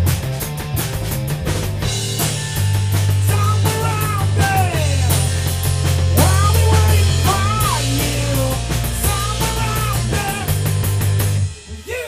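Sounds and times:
long held low bass notes: 0:00.0 - 0:11.6
rock band playing: 0:00.0 - 0:12.0
sliding bending high guitar notes: 0:01.8 - 0:11.6.

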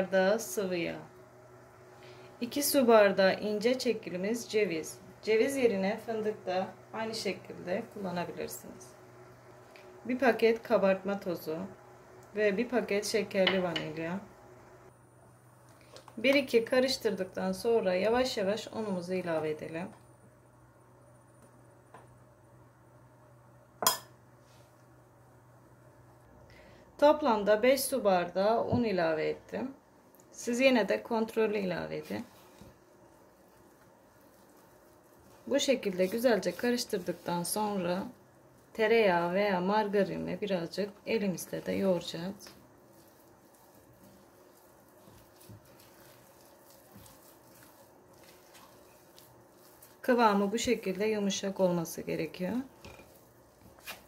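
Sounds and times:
sharp clink on glass bowl: 0:23.8 - 0:24.1
hand squishing dough in bowl: 0:31.0 - 0:54.0.

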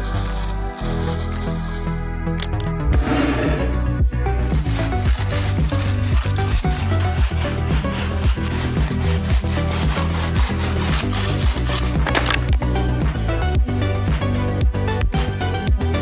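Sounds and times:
background music with steady beat: 0:00.0 - 0:16.0
hand saw cutting wood: 0:03.0 - 0:12.6.

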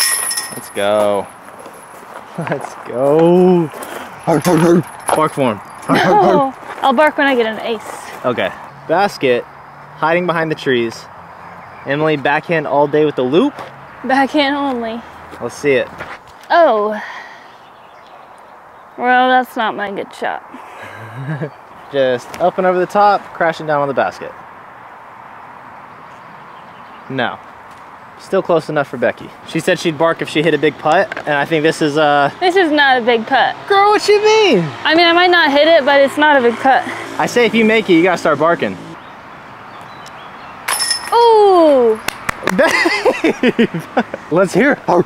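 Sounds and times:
disc hitting metal basket chains: 0:00.0 - 0:01.9, 0:04.2 - 0:05.9, 0:40.7 - 0:41.4
outdoor background noise: 0:00.0 - 0:45.0
person speaking: 0:02.3 - 0:09.0, 0:41.1 - 0:45.0.

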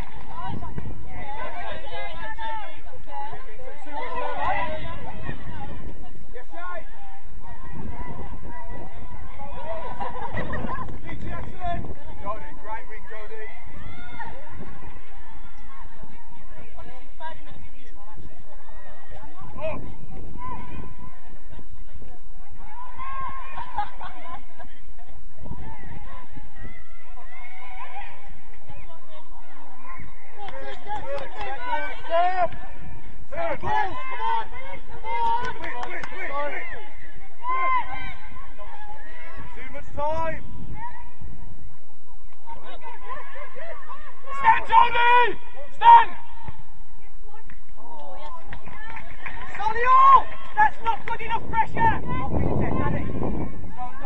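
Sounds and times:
wind rumble on microphone: 0:00.0 - 0:01.7, 0:04.5 - 0:06.3, 0:07.2 - 0:13.6, 0:51.1 - 0:54.0.

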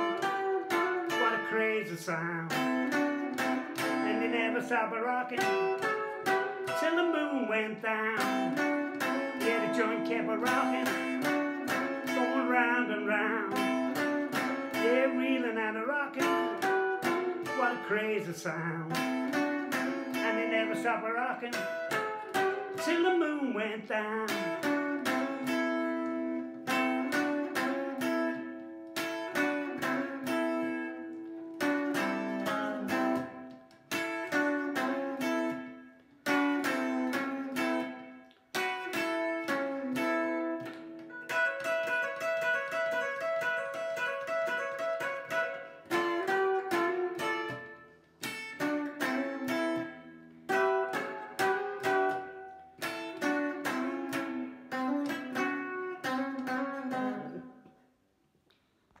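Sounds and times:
electric guitar playing: 0:00.0 - 0:57.8.

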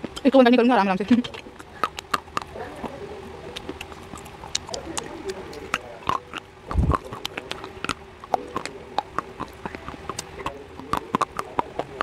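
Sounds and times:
crunching of clay being chewed: 0:00.0 - 0:00.4, 0:01.0 - 0:12.0.

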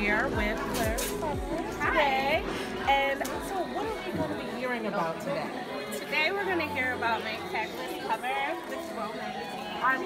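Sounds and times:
people talking in a large room: 0:00.0 - 0:10.0.

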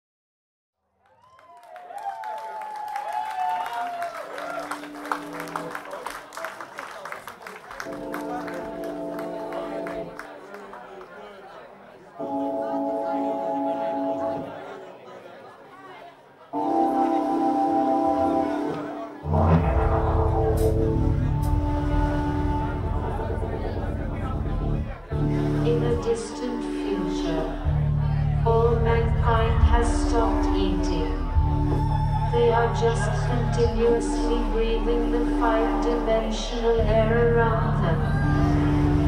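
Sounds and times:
crowd applause: 0:01.0 - 0:12.4
held band chord: 0:16.6 - 0:27.6
sustained guitar and synth tones: 0:16.6 - 0:39.0
rock band playing live: 0:19.3 - 0:23.4.

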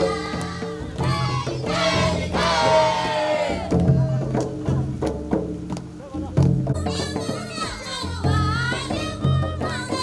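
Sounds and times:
deep beat: 0:00.0 - 0:10.0
woman singing into a microphone: 0:06.8 - 0:10.0.

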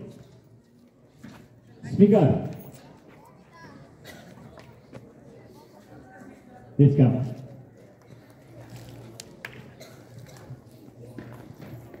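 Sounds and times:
shuffling footsteps on pavement: 0:00.0 - 0:06.4, 0:07.2 - 0:12.0
faint voices: 0:00.0 - 0:12.0.

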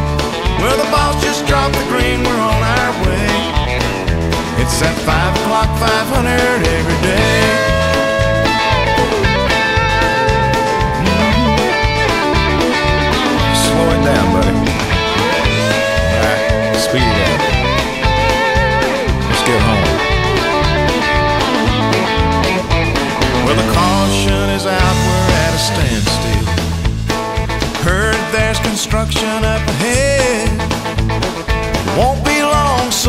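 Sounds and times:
bass: 0:00.0 - 0:33.0
drums with steady beat: 0:00.0 - 0:33.0
electric guitar lead: 0:00.0 - 0:33.0.

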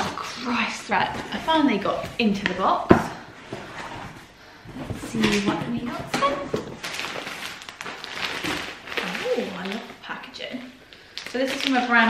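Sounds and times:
cardboard flaps rustling: 0:00.9 - 0:09.8.

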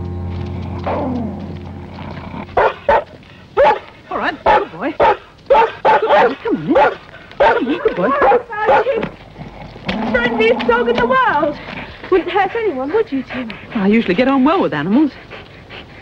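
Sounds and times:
dog barking: 0:02.6 - 0:09.0.

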